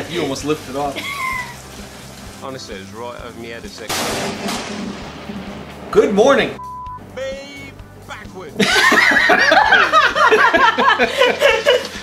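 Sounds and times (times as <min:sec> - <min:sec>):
heavy rain: 0:00.0 - 0:06.6
thunder crack and rumble: 0:03.8 - 0:06.6.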